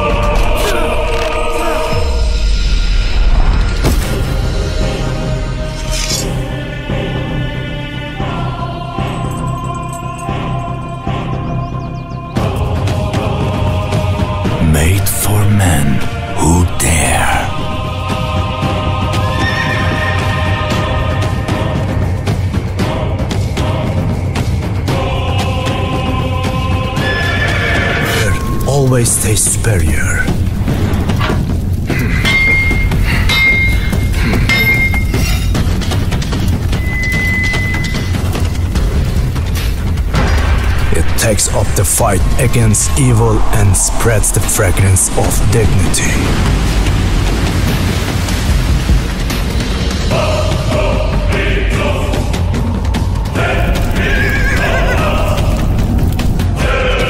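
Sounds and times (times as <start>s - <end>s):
background music sustained tones: 0.0s - 15.2s, 15.9s - 41.0s, 46.2s - 57.0s.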